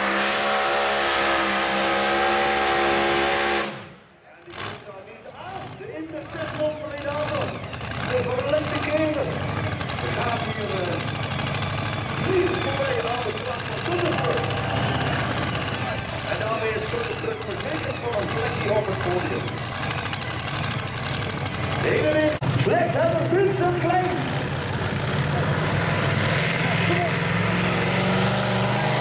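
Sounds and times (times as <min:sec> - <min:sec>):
large engine idling: 0:03.3 - 0:25.8
voices talking: 0:04.2 - 0:24.3.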